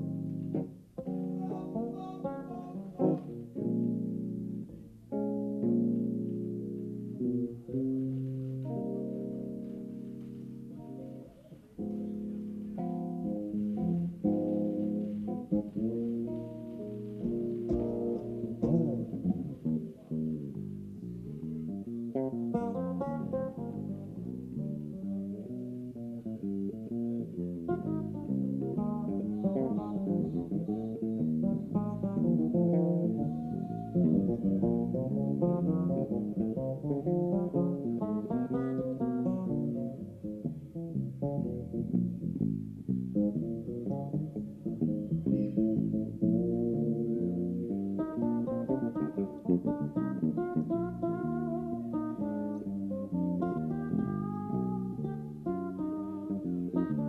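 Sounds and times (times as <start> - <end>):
electric bass guitars playing: 0.0 - 57.0.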